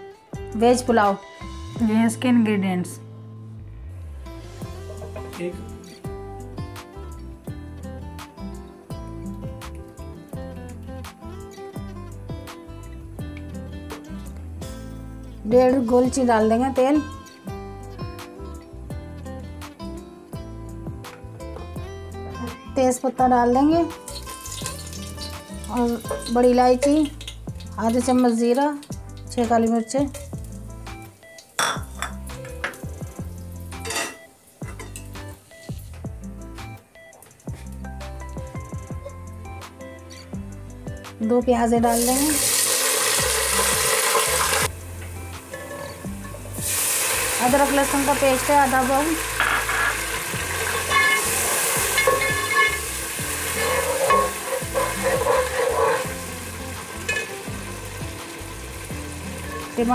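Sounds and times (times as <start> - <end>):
background music: 0.0 - 59.9
onions sizzling in hot oil: 24.0 - 35.9, 41.9 - 59.9
metal pot strikes: 24.1 - 27.4, 31.6 - 32.8, 49.2 - 56.2, 56.8 - 57.5
dishes clinking: 31.6 - 32.8, 33.8 - 35.1, 49.4 - 50.0, 50.7 - 52.9, 53.6 - 56.1, 57.1 - 57.4.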